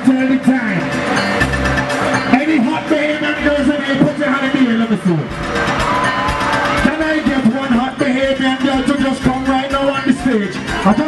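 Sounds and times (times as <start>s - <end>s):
soca music over loudspeakers: 0.0s - 11.0s
noisy rush with whistle: 5.4s - 7.6s.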